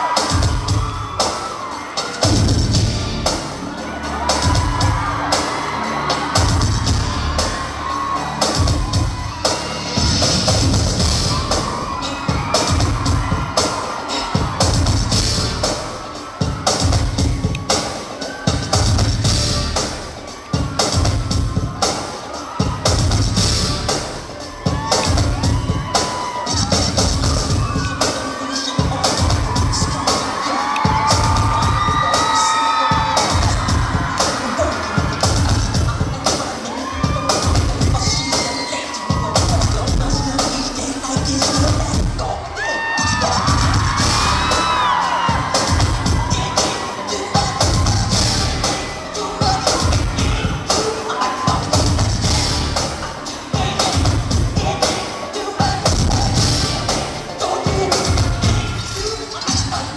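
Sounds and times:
audience screaming and cheering: 0.0s - 59.9s
loud dance music: 0.0s - 59.9s.

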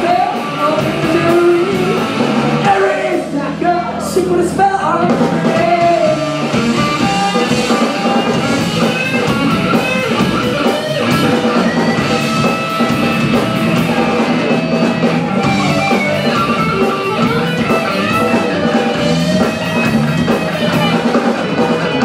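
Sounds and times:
electric guitars: 0.0s - 22.0s
drum kit beat on cymbals: 5.1s - 22.0s.

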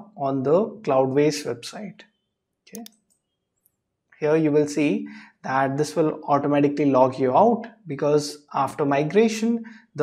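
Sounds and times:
computer mouse clicks: 2.7s - 3.8s.

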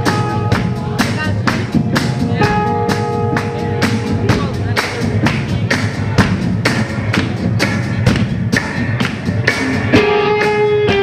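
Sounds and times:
low amplified rumble: 0.0s - 9.9s
drum kit steady beat: 0.0s - 11.0s.

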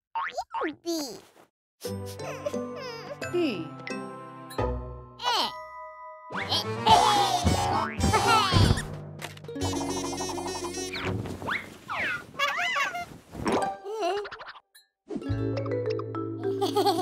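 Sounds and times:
playful cartoon music: 1.8s - 12.8s, 13.5s - 17.0s.

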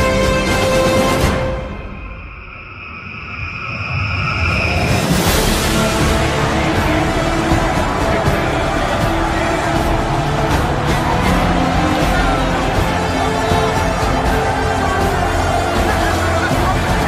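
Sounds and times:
dense music with steady beat: 5.2s - 17.0s.

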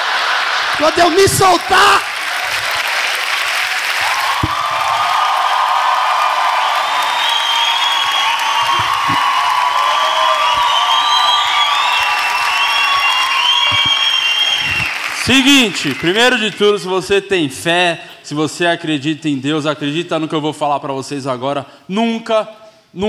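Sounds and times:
audience applauding: 0.0s - 17.0s.

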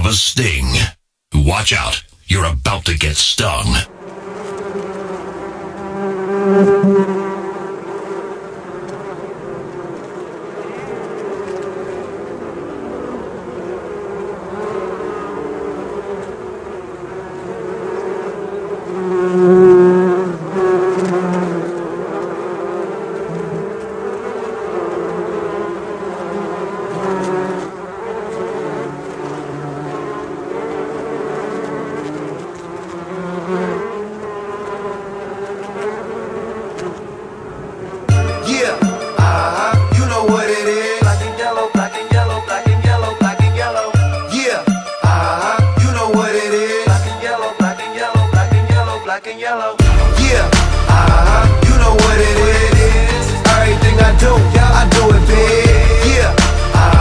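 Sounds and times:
bees buzzing: 4.0s - 49.2s, 49.8s - 57.0s.

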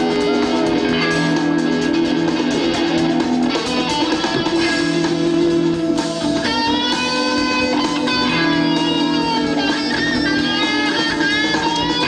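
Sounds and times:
live rock band with guitars: 0.0s - 12.0s.

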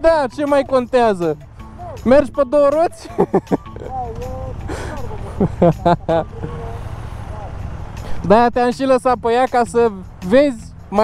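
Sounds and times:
men talking and laughing: 0.0s - 11.0s
motorcycle engines idling: 0.0s - 11.0s.

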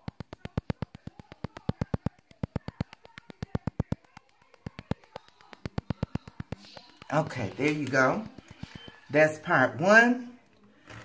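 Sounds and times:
rapid ticking of skin scrubber: 0.0s - 9.6s.

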